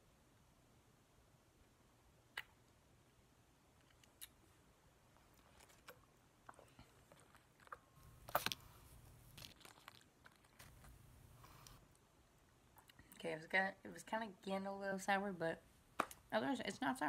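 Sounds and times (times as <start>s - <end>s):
person chewing candy: 5.2s - 11.0s.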